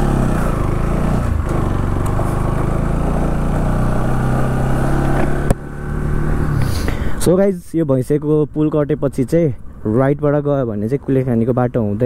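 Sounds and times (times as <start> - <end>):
motorcycle engine running: 0.0 - 6.6.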